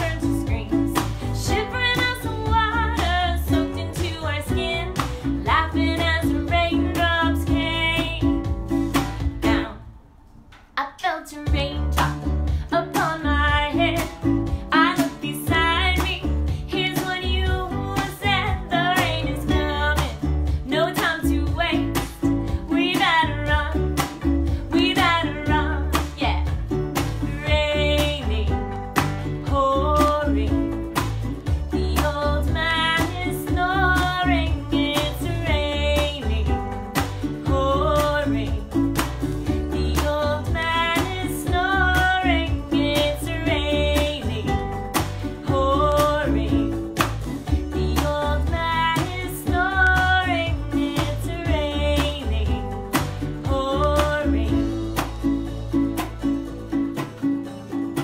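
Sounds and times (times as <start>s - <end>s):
song with singing and guitar: 0.0s - 58.0s.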